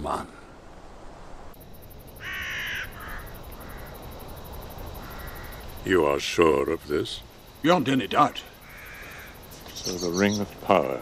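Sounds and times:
low background hiss: 0.0s - 11.0s
crow cawing: 2.1s - 4.1s, 5.0s - 5.7s, 8.5s - 9.5s.

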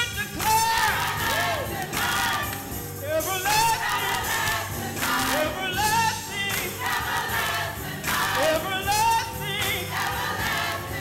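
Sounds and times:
music playing: 0.0s - 11.0s
gospel choir singing: 0.1s - 11.0s.

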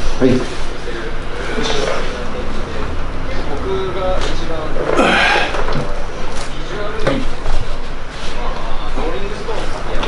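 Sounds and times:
man grunting: 4.9s - 5.7s.

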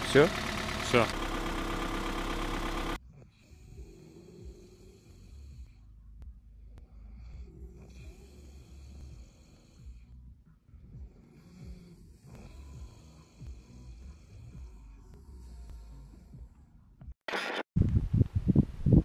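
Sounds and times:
person snoring: 3.1s - 5.9s, 6.8s - 10.2s, 11.0s - 16.6s.

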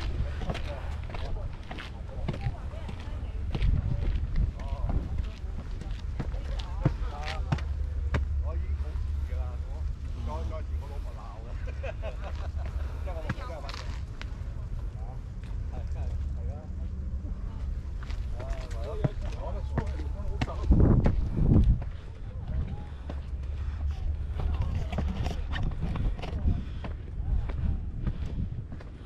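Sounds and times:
footsteps on concrete stairs: 0.0s - 8.4s, 17.6s - 29.0s
people talking: 0.0s - 29.0s
wind rumble on microphone: 0.0s - 29.0s.

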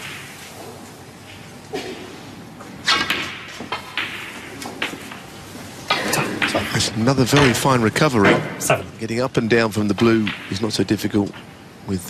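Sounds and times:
snooker balls clicking: 2.6s - 8.4s, 9.9s - 11.5s.

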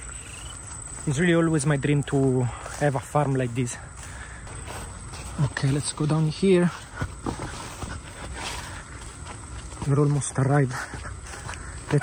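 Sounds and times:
footsteps on grassy path: 0.0s - 12.0s.

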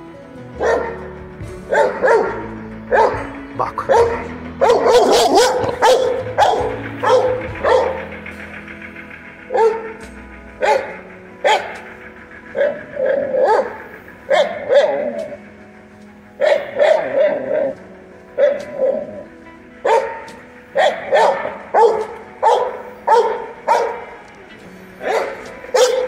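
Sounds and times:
dog barking: 0.6s - 1.1s, 1.7s - 8.2s, 9.5s - 10.0s, 10.6s - 11.9s, 12.6s - 15.4s, 16.4s - 17.8s, 18.4s - 24.1s, 25.0s - 26.0s.

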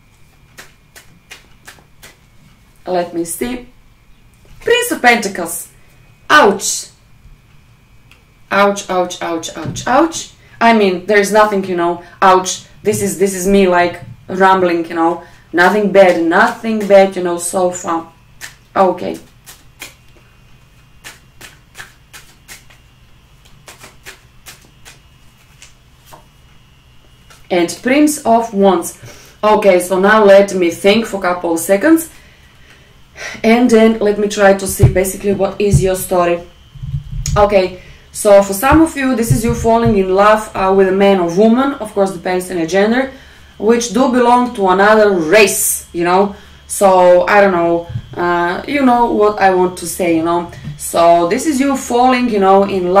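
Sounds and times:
cards being shuffled: 19.2s - 20.2s, 21.0s - 22.8s, 23.4s - 26.3s.

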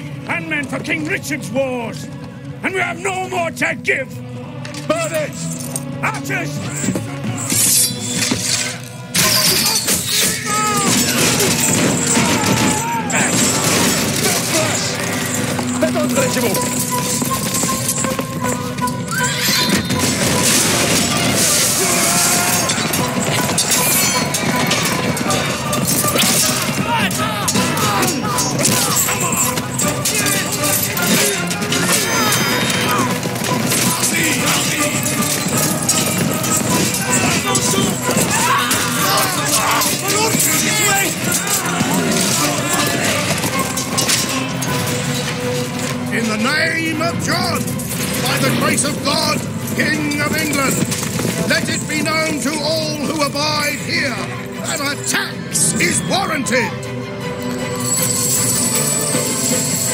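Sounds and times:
wordless voices: 0.0s - 18.5s, 19.1s - 56.9s
film score music: 0.0s - 59.9s
horses neighing: 9.2s - 45.5s
horses galloping: 10.3s - 54.9s.

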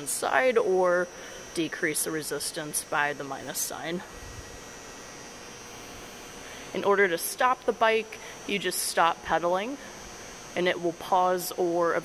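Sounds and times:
exercise bike hum and hiss: 0.0s - 12.0s.

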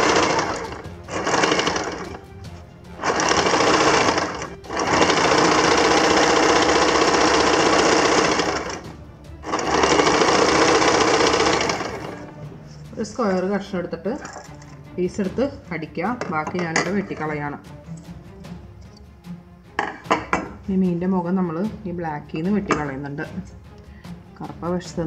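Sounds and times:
sewing machine stitching: 0.0s - 2.2s, 3.0s - 8.8s, 9.4s - 12.4s.

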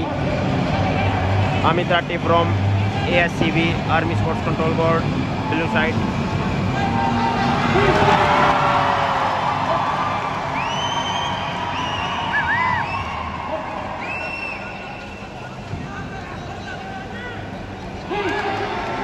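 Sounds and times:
crowd cheering and shouting: 0.0s - 19.0s.

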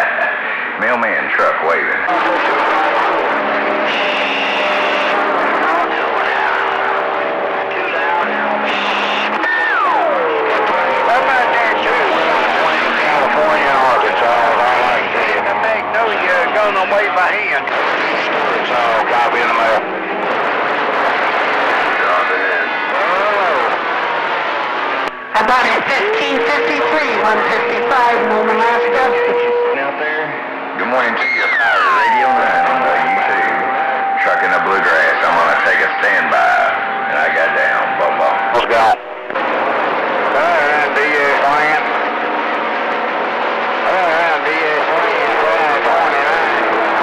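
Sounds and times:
garbled radio voices: 0.0s - 47.0s
heterodyne tones: 0.0s - 47.0s
falling radio whistle: 3.9s - 5.2s, 8.1s - 12.4s.

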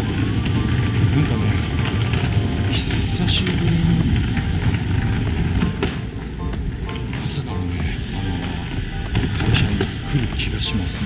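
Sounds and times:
rolling bag wheels on paving: 0.0s - 11.0s
wheel clicks over pavement joints: 0.0s - 11.0s.

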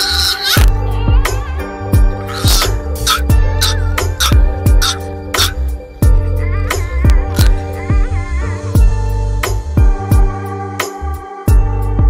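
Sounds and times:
music with heavy bass beat: 0.0s - 8.2s.

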